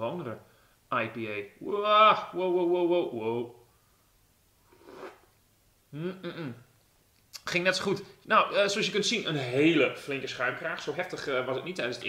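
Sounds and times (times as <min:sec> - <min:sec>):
man sipping from a glass: 0:04.7 - 0:05.4.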